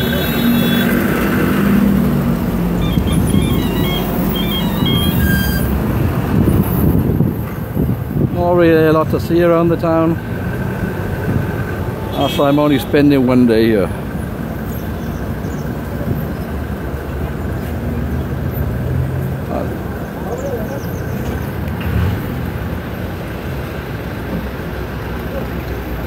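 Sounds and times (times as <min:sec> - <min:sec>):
minibus engines idling: 0:00.0 - 0:26.0
street traffic: 0:00.0 - 0:26.0.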